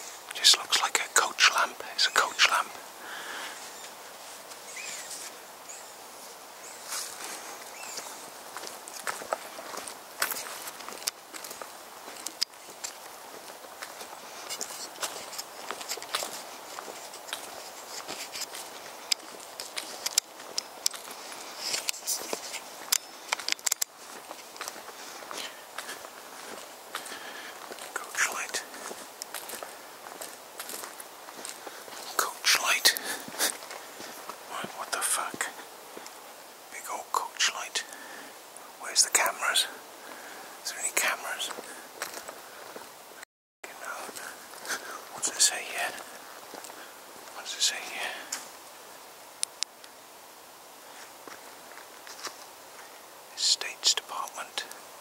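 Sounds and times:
person whispering: 0.0 - 3.9, 25.2 - 29.1, 32.0 - 33.6, 34.4 - 35.7, 36.7 - 38.2, 38.8 - 41.9, 43.6 - 46.2, 47.3 - 48.4, 53.3 - 54.8
footsteps walking: 6.2 - 36.2, 41.0 - 43.0, 43.8 - 50.0, 50.8 - 53.0.

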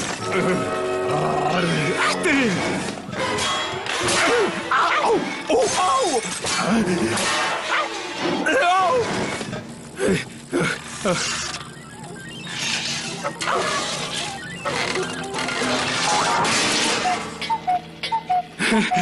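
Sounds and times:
comic sound effects: 10.0 - 17.5
cartoon background music: 11.2 - 19.0.

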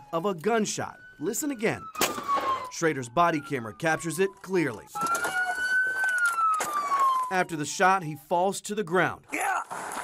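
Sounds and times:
police siren wailing: 0.0 - 8.6
sharp crack: 2.0 - 2.6.

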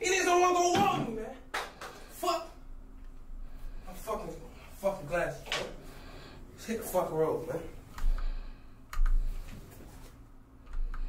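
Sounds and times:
computer keys clicking: 7.9 - 8.3, 8.9 - 9.3, 10.6 - 11.0.

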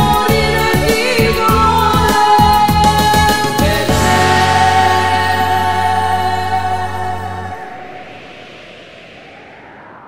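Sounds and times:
pop song final chord: 3.5 - 8.0.

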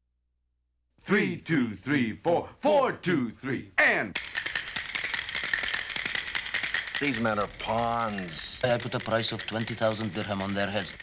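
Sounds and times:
dense crackle of rapid clicks: 4.2 - 11.0.

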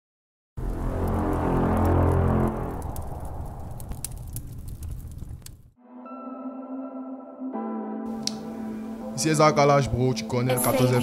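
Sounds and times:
deep rumble with fire crackles: 0.6 - 5.8.

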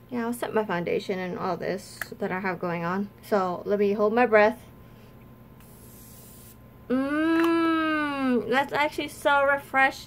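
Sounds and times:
spray can hiss: 5.6 - 6.6.

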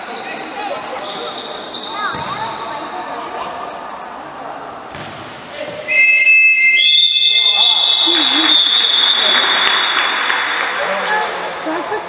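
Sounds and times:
chatter in sports hall: 0.0 - 12.0
referee whistle blasts: 5.9 - 10.6.

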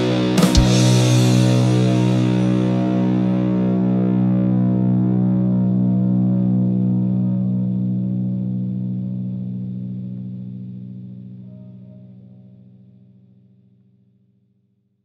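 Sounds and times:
distorted electric guitar chord: 0.0 - 12.1.

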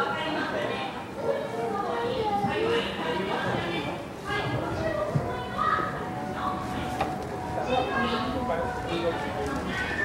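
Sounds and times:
indistinct chatter with children: 0.0 - 10.0.

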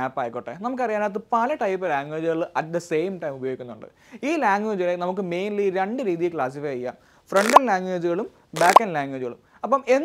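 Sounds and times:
man speaking: 8.6 - 8.8.

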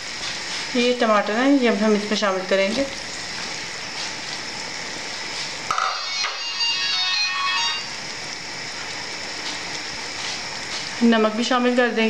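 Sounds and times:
vegetables sizzling in a pot: 0.0 - 12.0
short high-pitched melody: 5.7 - 8.0.

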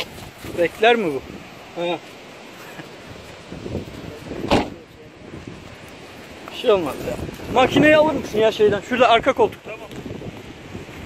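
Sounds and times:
steady wind noise: 0.0 - 11.0
car door shutting: 4.4 - 4.8.

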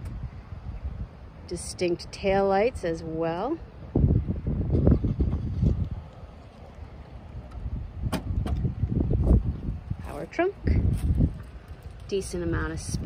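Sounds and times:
wind rumble: 0.0 - 13.0
microphone handling noise: 4.0 - 6.2, 7.4 - 11.6
trunk lid latch click: 8.1 - 8.7.

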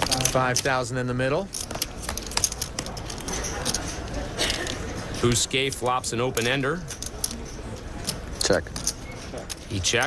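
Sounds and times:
poker chips clicking: 0.0 - 0.8, 1.5 - 4.8, 6.4 - 10.0.

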